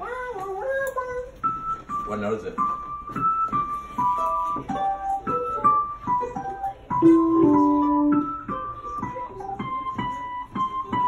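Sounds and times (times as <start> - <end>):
digital piano notes: 1.2 - 11.0.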